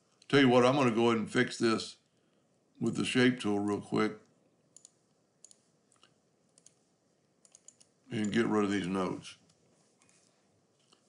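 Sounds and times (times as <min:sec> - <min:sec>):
computer mouse clicks: 0:04.7 - 0:06.8, 0:07.4 - 0:08.4.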